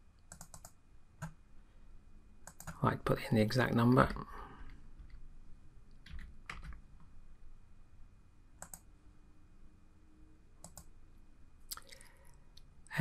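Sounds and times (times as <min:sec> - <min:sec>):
computer keyboard keystrokes: 0:00.3 - 0:01.4, 0:02.4 - 0:02.8, 0:06.0 - 0:06.8, 0:08.6 - 0:08.8, 0:10.6 - 0:10.9.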